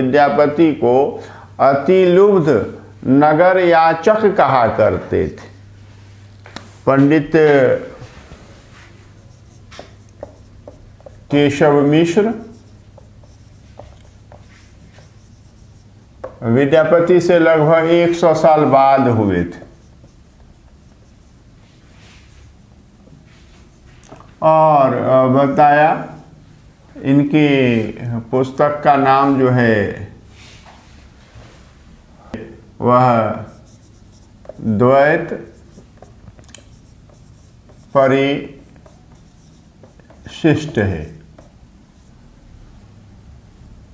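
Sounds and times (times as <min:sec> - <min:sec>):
low room hum: 0:00.0 - 0:43.9
marker pen squeaking on whiteboard: 0:08.8 - 0:16.4, 0:19.5 - 0:21.5, 0:33.2 - 0:42.2.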